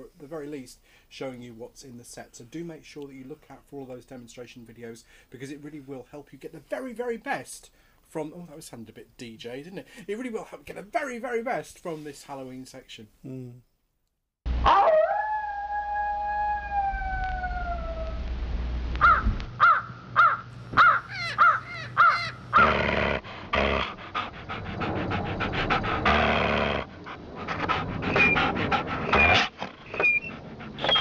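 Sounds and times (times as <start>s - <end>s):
dog howling: 14.6s - 18.2s
harsh breathy panting: 23.0s - 31.0s
dog yelping: 28.1s - 31.0s.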